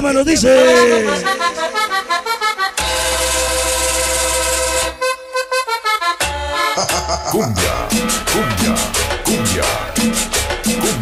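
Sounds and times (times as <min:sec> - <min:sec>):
accordion dance music: 0:00.4 - 0:11.0
deep bass: 0:06.9 - 0:11.0.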